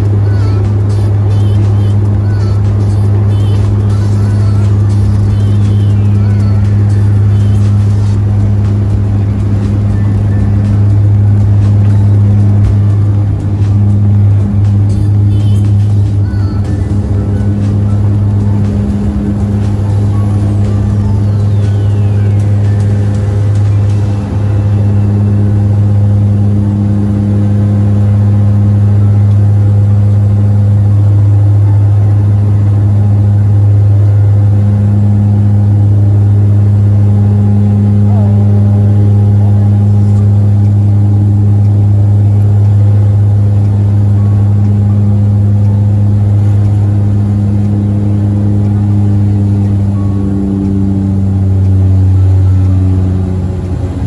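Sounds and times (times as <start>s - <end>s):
propeller plane engine drone: 0.0s - 54.0s.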